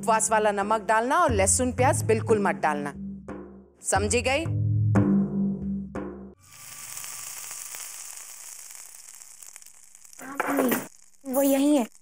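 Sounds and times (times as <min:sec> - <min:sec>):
food sizzling in a pot: 0:06.4 - 0:12.0.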